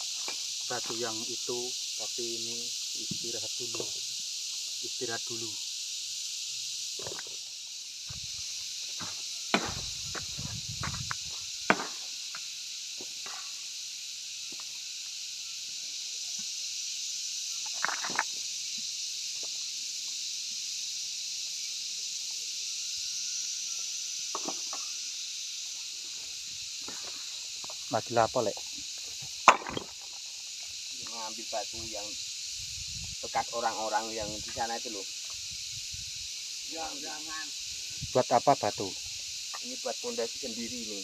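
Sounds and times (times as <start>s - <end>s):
insects droning: 0.0s - 41.0s
knocks and scuffs on stony ground: 8.1s - 12.0s.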